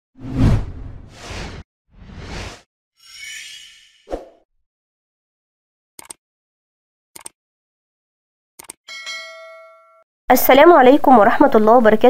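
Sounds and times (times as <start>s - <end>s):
whoosh sound effects: 0.2s - 2.6s.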